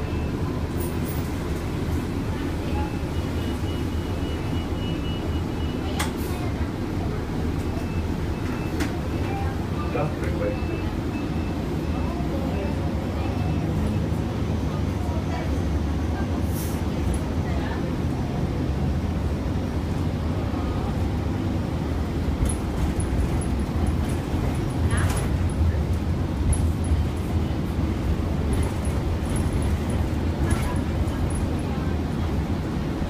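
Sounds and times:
bus body rattling: 0.0s - 33.0s
bus engine and road rumble: 0.0s - 33.0s.

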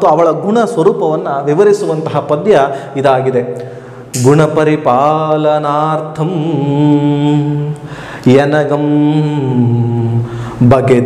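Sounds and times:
man chanting poetry: 0.0s - 11.0s.

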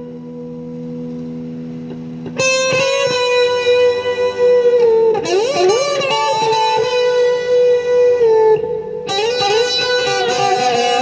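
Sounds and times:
electric guitar with fuzz: 0.0s - 11.0s.

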